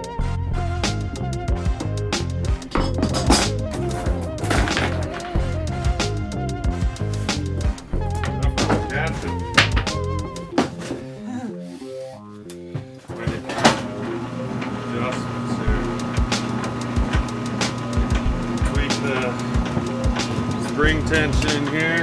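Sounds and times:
electric motor humming and whining: 13.8 - 22.0.

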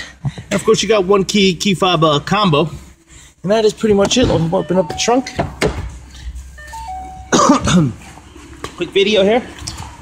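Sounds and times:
electronic chime: 4.4 - 5.5, 6.5 - 7.7
man coughing: 7.3 - 8.0.

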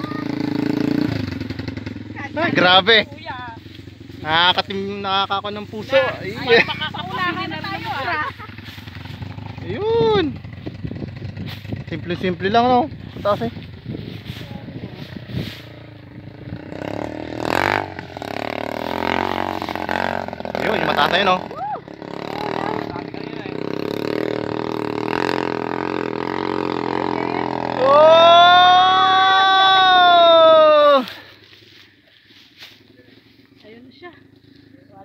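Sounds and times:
loud voices calling out: 0.0 - 1.3, 2.0 - 10.5, 18.8 - 32.1
motorcycle engine running: 0.0 - 35.0.

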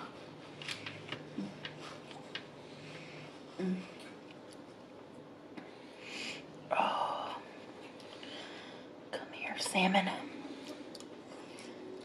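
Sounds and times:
woman murmuring softly: 3.6 - 4.1.

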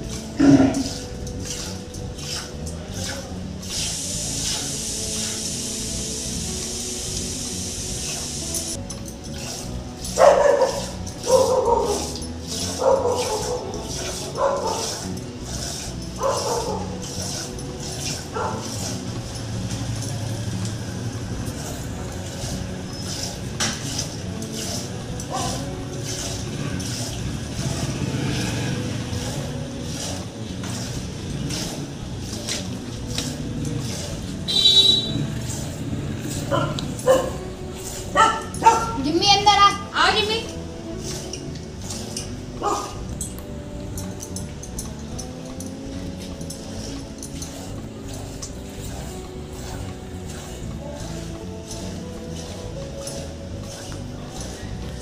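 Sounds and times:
milk squirting into steel pot: 0.0 - 6.9, 8.0 - 38.6
dog barking: 10.2 - 15.1, 16.2 - 17.0, 18.2 - 18.8, 25.3 - 25.7, 36.5 - 37.4, 38.1 - 39.1, 42.6 - 43.0.

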